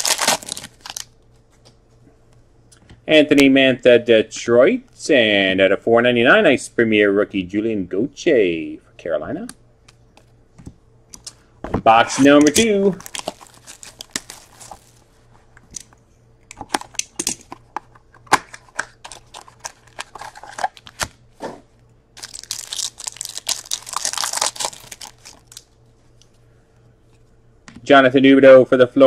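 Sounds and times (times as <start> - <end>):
foil packs torn open: 0.0 - 1.1, 12.9 - 15.0, 19.0 - 21.1, 22.2 - 25.6
card packs crinkling and clicking: 0.0 - 1.2, 11.2 - 15.1, 16.5 - 21.2, 22.2 - 26.3.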